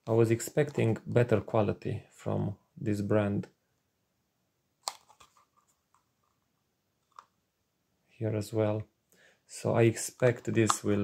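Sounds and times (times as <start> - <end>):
plastic enclosure clicks: 4.8 - 5.4, 10.5 - 11.0.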